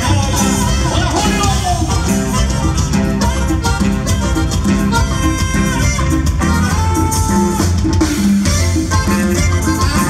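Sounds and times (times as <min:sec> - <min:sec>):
band playing dance music: 0:00.0 - 0:10.0.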